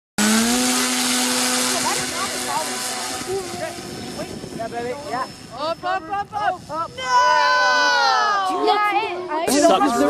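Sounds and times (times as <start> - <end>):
model plane motor whine: 0.2 - 7.4
propeller wash hiss: 0.3 - 5.5.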